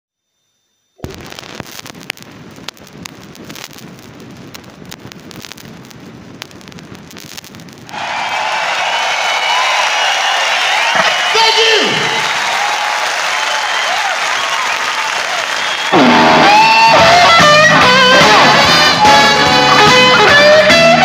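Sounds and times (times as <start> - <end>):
vinyl stylus crackle and pops: 1.0 - 11.4, 14.6 - 21.0
crowd applause and cheering: 7.8 - 21.0.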